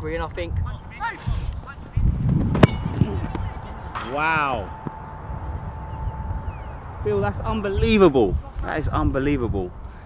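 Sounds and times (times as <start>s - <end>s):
boot kicking football thud: 2.2s - 3.5s.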